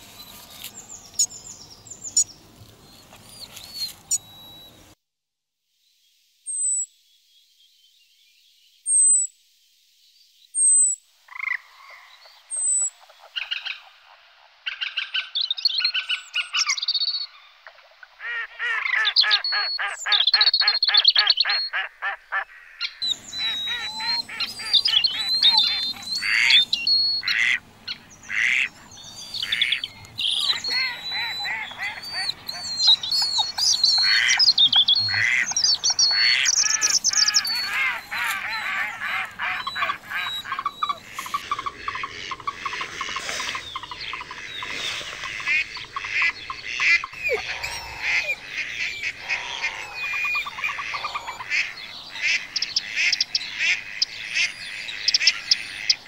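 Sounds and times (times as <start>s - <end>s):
birds singing and chirping: 0.0s - 5.0s, 14.7s - 17.6s, 18.2s - 56.0s.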